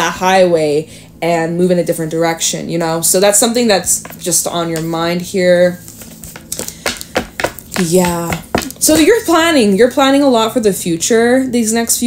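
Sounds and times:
cards tapping on wooden table: 0:05.9 - 0:09.2.

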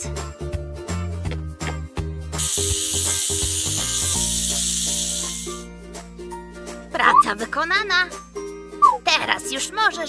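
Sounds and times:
children's background music: 0:00.0 - 0:10.0
garden hose spraying water: 0:02.4 - 0:05.6.

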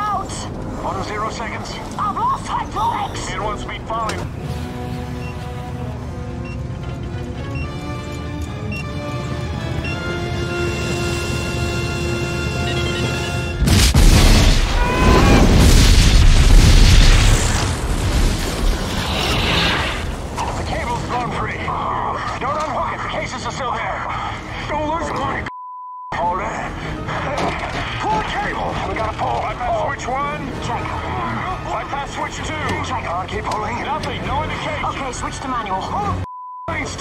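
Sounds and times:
tense orchestral music: 0:00.2 - 0:25.3, 0:26.2 - 0:36.2
explosion boom and fire roar: 0:13.6 - 0:21.2.

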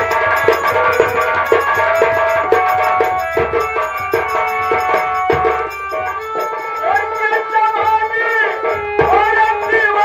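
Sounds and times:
drums beating: 0:00.0 - 0:10.0
held melody notes: 0:00.0 - 0:10.0.

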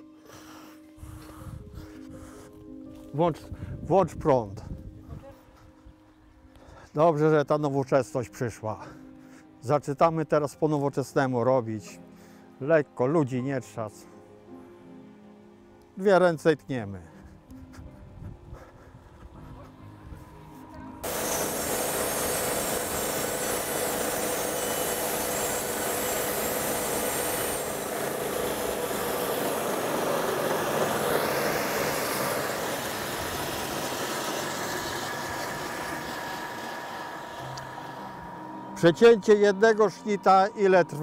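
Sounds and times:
steady whine: 0:19.1 - 0:41.0
saw blade cutting wood: 0:21.0 - 0:41.0
saw motor running: 0:21.0 - 0:41.0.

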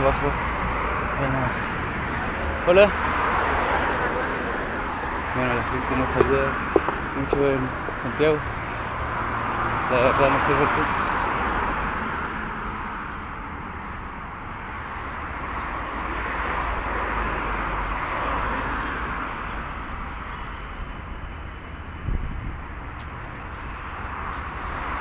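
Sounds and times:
cars passing on street: 0:00.0 - 0:25.0
short knock: 0:06.1 - 0:08.0.

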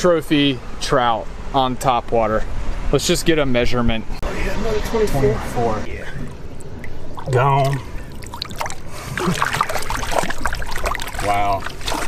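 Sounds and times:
water splashing: 0:05.9 - 0:12.0.

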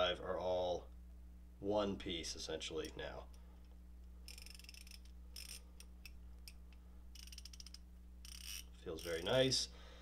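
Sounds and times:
ratchet clicking: 0:04.2 - 0:06.6, 0:07.2 - 0:09.4.

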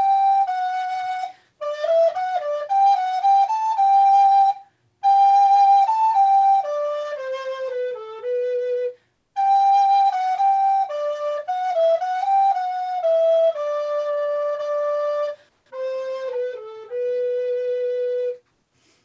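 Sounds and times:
recorder melody: 0:00.0 - 0:18.5.

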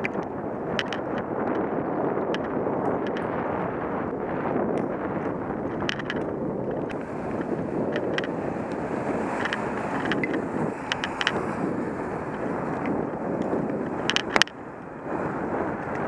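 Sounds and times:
light clicks and rattles: 0:00.0 - 0:01.7, 0:02.3 - 0:03.4, 0:05.7 - 0:14.6
wind rushing over microphone: 0:00.0 - 0:16.0.

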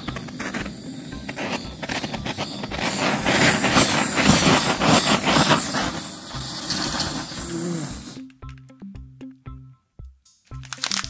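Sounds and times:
torch burning with rushing hiss: 0:00.0 - 0:08.2.

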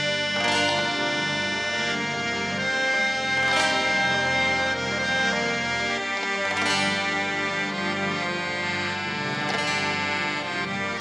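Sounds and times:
harmonium ensemble playing: 0:00.0 - 0:11.0.

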